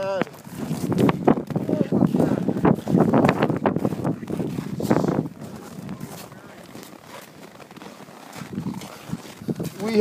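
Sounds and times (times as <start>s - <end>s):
footsteps crunching in snow: 0.0s - 10.0s
wind gusting on microphone: 0.0s - 10.0s.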